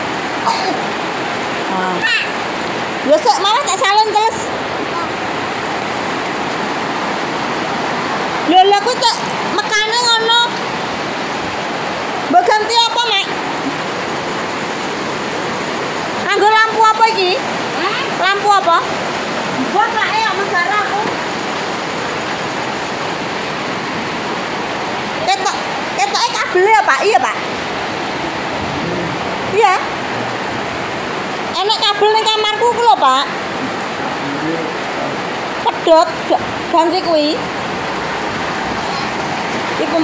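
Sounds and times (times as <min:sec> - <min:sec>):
steady rushing noise: 0:00.0 - 0:40.0.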